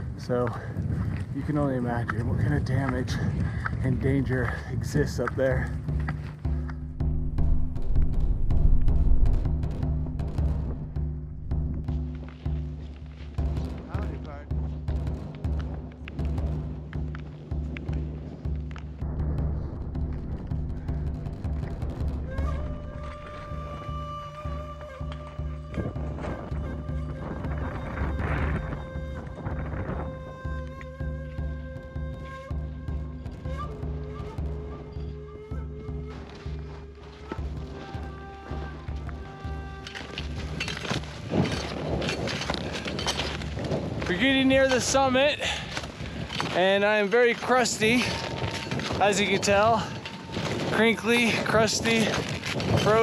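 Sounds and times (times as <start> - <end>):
background music with a beat: 5.8 - 42.0.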